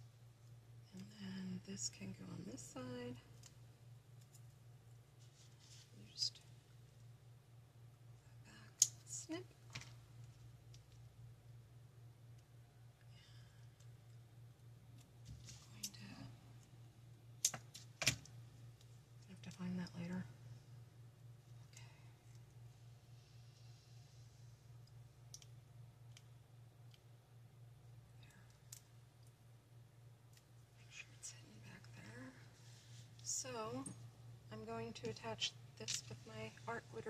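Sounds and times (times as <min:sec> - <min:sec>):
low room hum: 0:00.0 - 0:37.0.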